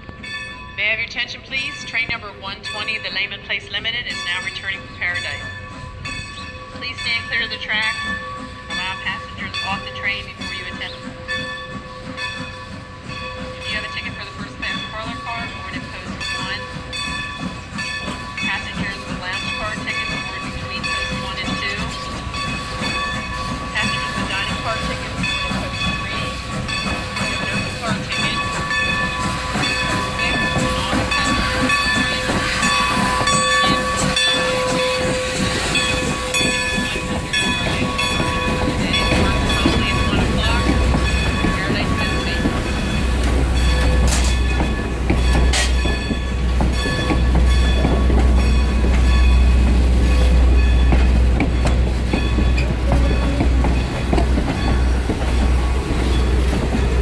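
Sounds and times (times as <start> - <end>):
steam locomotive arriving: 0.0 - 57.0
steam hissing: 10.5 - 57.0.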